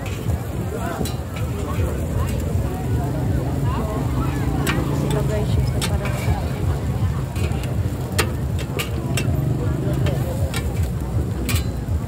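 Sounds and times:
indistinct voices: 0.0 - 12.0
metal spatulas clicking on griddle: 4.5 - 6.5, 7.3 - 11.9.

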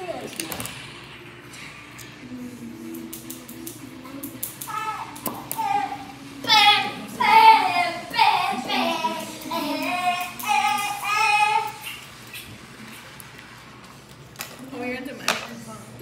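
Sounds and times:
girl singing: 2.3 - 11.9.

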